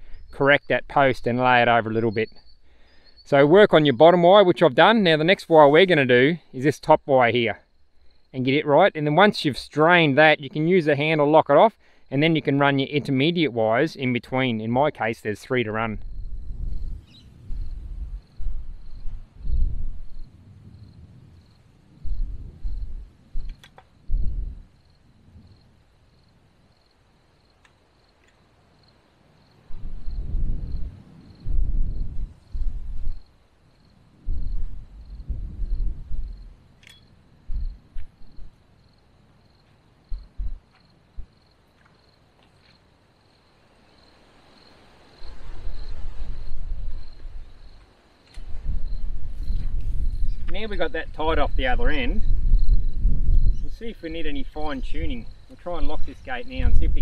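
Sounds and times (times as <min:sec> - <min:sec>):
insect chirping: 0:00.0 - 0:57.0
wind buffeting microphone: 0:15.6 - 0:25.9, 0:29.6 - 0:33.3, 0:34.0 - 0:38.6, 0:40.0 - 0:41.4, 0:45.2 - 0:47.8, 0:48.4 - 0:57.0
faint sharp clicks: 0:23.4 - 0:23.9, 0:27.6 - 0:28.4.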